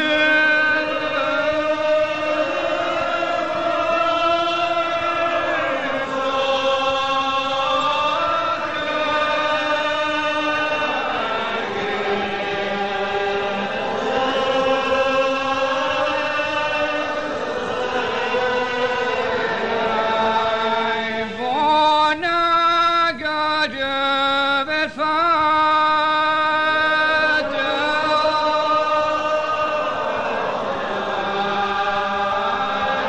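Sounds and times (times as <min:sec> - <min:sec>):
congregation singing a psalm: 0:00.0 - 0:33.0.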